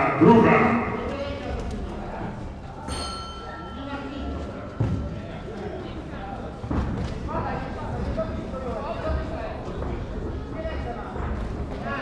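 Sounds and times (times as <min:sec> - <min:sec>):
people's voices in hall: 0:00.0 - 0:12.0.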